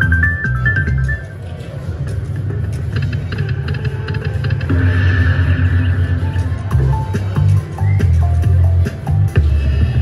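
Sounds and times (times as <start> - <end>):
bass-heavy electronic tune: 0.0 - 1.4, 2.3 - 10.0.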